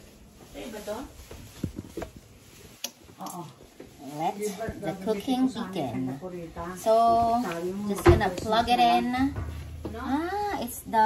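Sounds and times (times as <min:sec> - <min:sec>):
objects knocking on a counter: 0:09.1 - 0:10.3.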